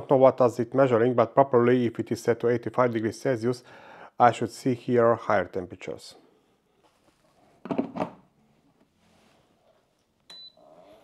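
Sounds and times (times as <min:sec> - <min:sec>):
brief high beep: 0:10.3 - 0:10.6.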